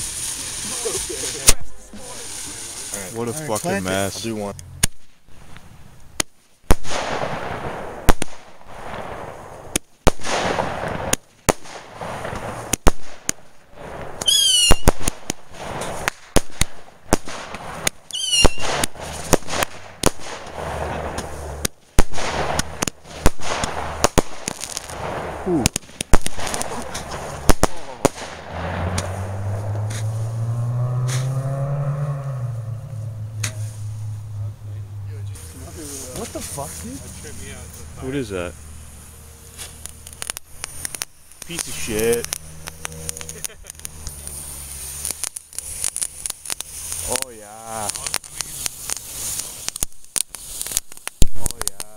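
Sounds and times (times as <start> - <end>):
falling firework whistles: 0.0 - 3.0, 6.8 - 31.4, 39.0 - 47.2
firework bangs: 0.0 - 34.5, 35.3 - 51.9
low droning hum: 28.4 - 45.0.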